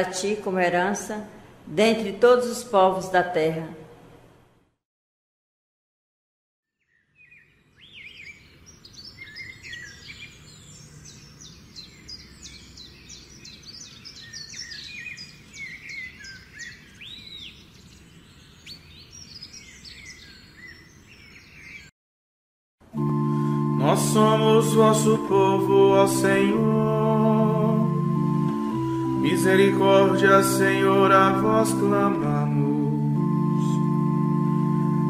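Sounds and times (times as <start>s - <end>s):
low steady background noise: 0.0s - 4.7s
birds chirping and singing: 6.8s - 21.9s.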